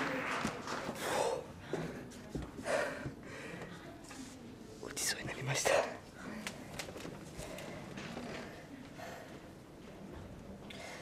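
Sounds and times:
man whispering: 4.8s - 6.2s.

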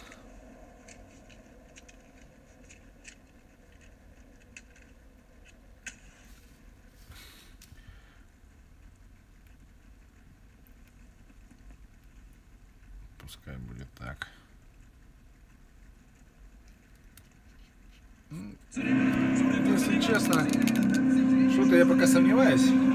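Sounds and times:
low steady hum: 0.0s - 22.9s.

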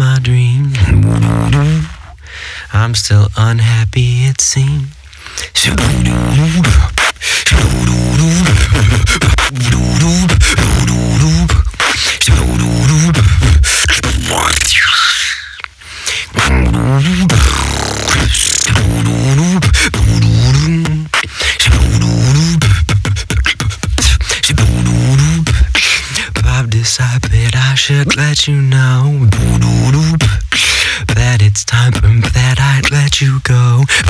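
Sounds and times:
beatboxing: 0.0s - 34.0s
rising high vocal sweep: 5.6s - 15.6s, 16.2s - 26.6s.

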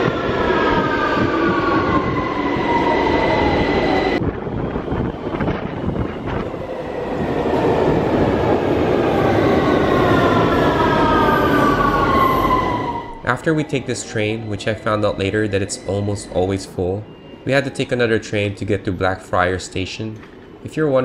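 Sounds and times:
train wheels rumbling on rail: 0.0s - 13.3s.

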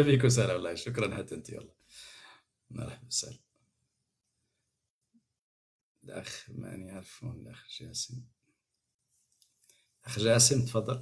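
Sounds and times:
man speaking: 0.0s - 1.7s, 2.7s - 3.4s, 6.1s - 8.2s, 10.1s - 11.0s.

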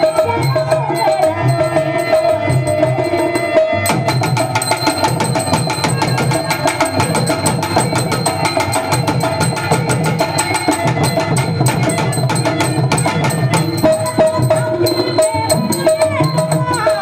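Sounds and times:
hand drums: 0.0s - 17.0s.

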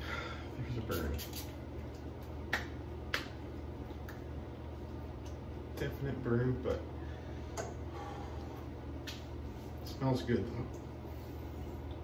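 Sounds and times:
hands patting face: 0.9s - 4.3s.

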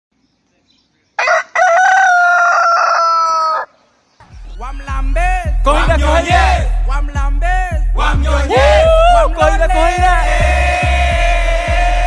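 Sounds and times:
rooster crowing: 1.2s - 3.8s.

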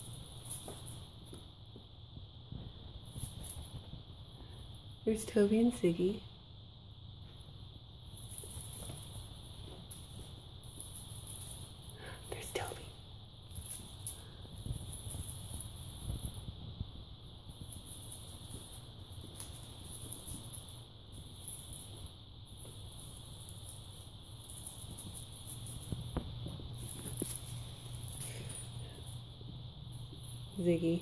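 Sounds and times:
faint hum: 0.0s - 31.0s
kittens' paws pattering on floor: 0.0s - 31.0s.

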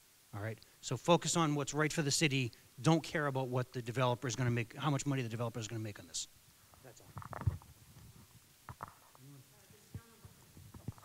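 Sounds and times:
microphone handling knocks and rustles: 6.7s - 9.2s, 9.9s - 11.0s.

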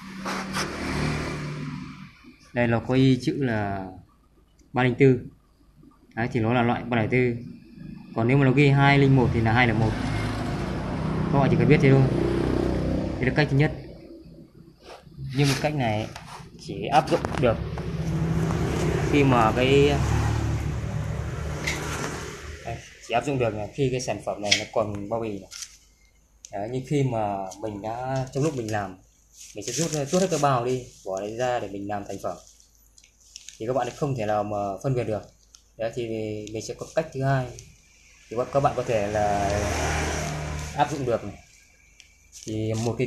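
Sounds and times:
brief scratchy sounds: 0.0s - 2.0s
rushing noise: 0.0s - 2.4s
vehicle engine running: 16.7s - 23.0s.

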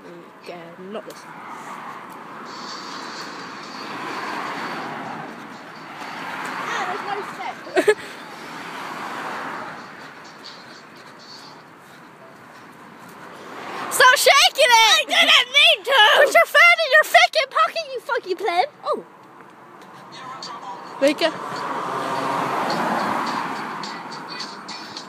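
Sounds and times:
cars passing with a hiss: 0.0s - 25.0s.

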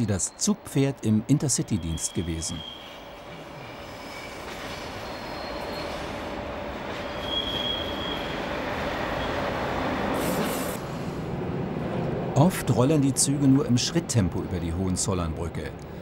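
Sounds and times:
high wheel squeal: 1.6s - 6.3s, 7.0s - 9.4s
train wheels rumbling on rails: 1.7s - 14.8s.

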